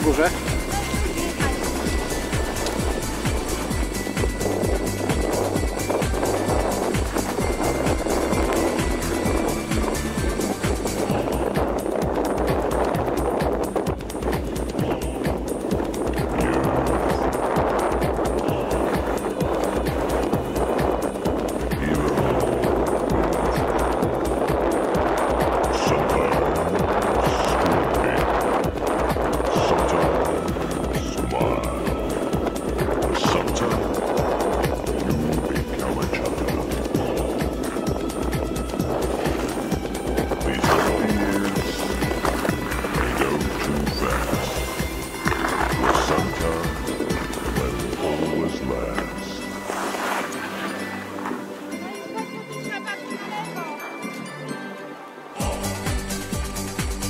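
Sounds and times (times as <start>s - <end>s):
music playing: 0.0s - 57.0s
skis scraping over snow: 34.9s - 52.0s.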